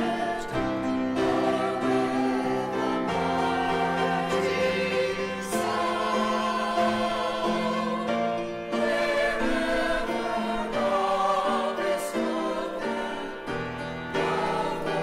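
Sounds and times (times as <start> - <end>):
church choir singing a hymn: 0.0 - 15.0.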